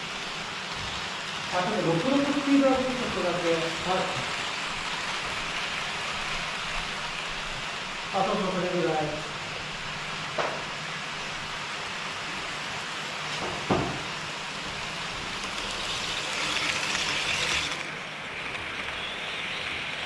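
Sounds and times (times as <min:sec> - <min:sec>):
model train rolling hiss: 0:00.0 - 0:20.0.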